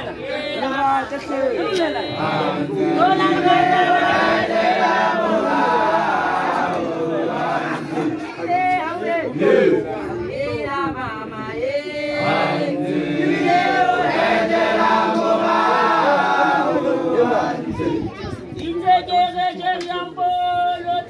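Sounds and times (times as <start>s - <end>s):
group singing and chanting: 0.0s - 21.0s.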